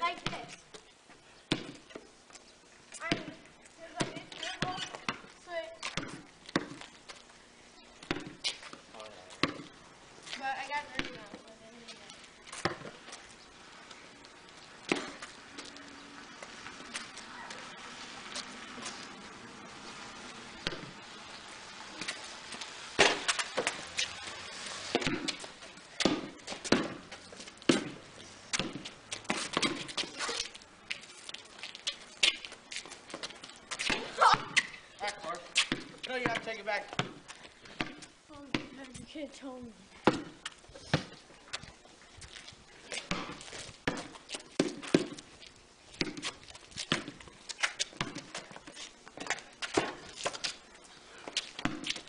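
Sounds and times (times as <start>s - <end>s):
basketball bouncing on concrete: 0.0s - 0.6s, 1.5s - 2.0s, 3.0s - 6.9s, 8.0s - 11.5s, 12.5s - 13.1s, 14.8s - 15.3s, 20.6s - 21.0s, 24.9s - 30.5s, 33.1s - 39.2s, 40.0s - 41.7s, 43.0s - 45.3s, 45.9s - 47.2s, 47.8s - 48.6s, 49.2s - 50.5s, 51.3s - 52.0s.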